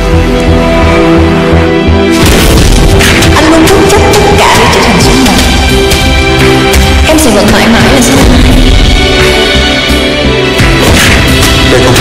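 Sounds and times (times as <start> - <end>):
dramatic film score music: 0.0 - 12.0
sharp percussive hits: 10.6 - 12.0.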